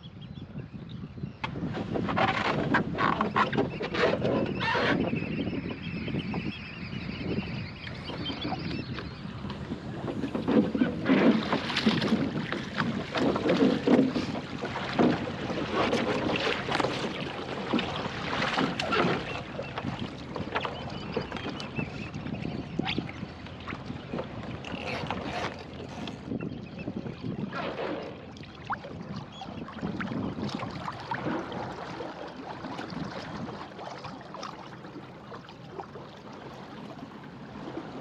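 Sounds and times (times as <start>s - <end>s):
water splashing and sloshing: 1.4s - 5.3s, 7.3s - 38.0s.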